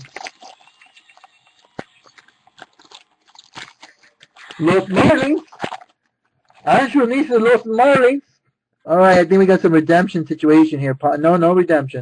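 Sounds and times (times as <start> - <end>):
foil wrapper crinkling and tearing: 0.0 - 6.8.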